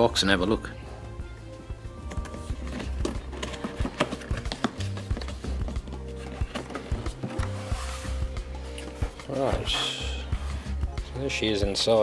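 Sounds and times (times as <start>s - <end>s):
background music with steady bass: 0.0s - 12.0s
cardboard box being opened: 2.4s - 10.0s.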